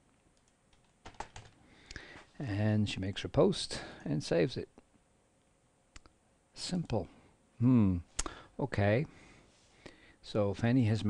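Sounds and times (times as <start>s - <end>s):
keyboard and mouse clicks: 0.4s - 2.0s.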